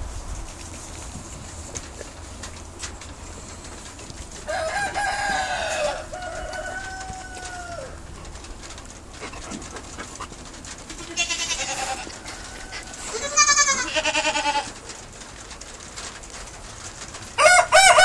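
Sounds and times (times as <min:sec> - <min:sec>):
rooster crowing: 0:04.4 - 0:08.0, 0:17.4 - 0:18.0
young goat bleating: 0:11.0 - 0:12.1, 0:13.1 - 0:14.7.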